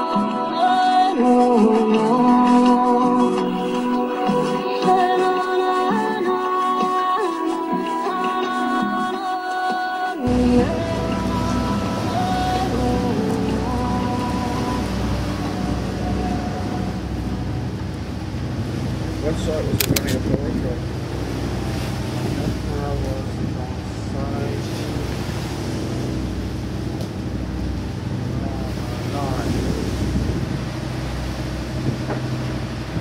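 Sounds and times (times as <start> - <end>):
indistinct voices: 0.0 - 9.1, 10.1 - 17.7
background music: 0.0 - 20.2
boat engine hum: 2.2 - 8.4, 10.2 - 33.0
sharp clicks: 19.7 - 20.2.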